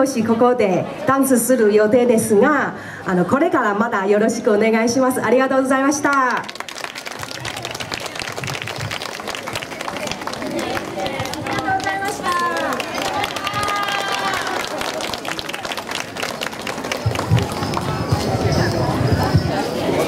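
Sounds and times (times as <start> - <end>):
audience clapping: 6.1 - 18.6
voices calling out: 9.2 - 15.9.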